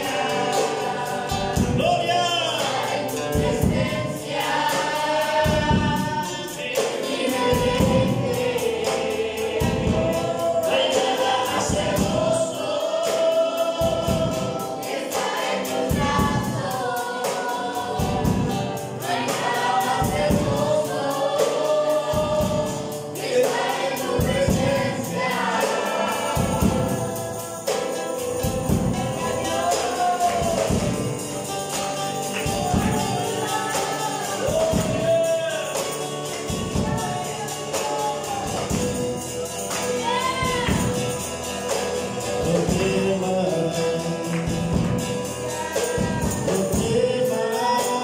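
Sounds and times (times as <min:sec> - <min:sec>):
strummed acoustic guitar: 0:00.0 - 0:48.0
voices singing worship song: 0:00.0 - 0:48.0.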